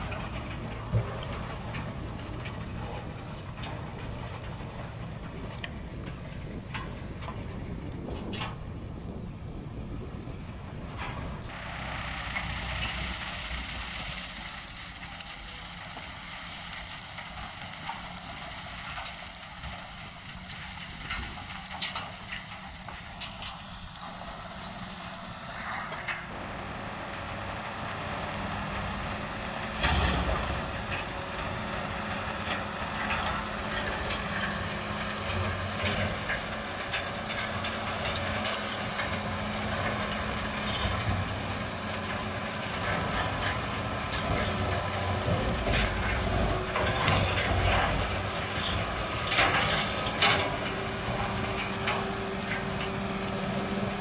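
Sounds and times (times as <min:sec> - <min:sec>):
bale processor shredding stalks: 0:00.0 - 0:54.0
tractor diesel engine: 0:00.0 - 0:54.0.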